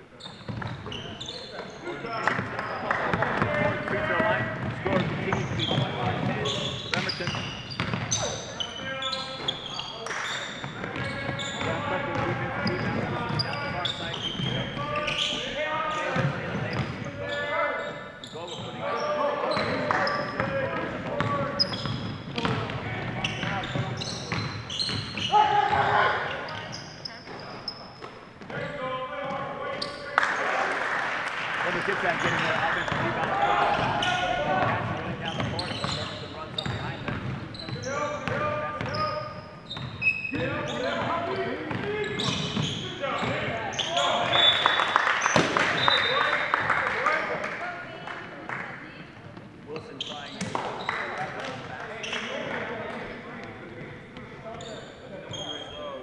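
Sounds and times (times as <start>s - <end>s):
sneakers squeaking: 0.0s - 30.5s, 31.8s - 56.0s
people calling out: 25.2s - 26.6s.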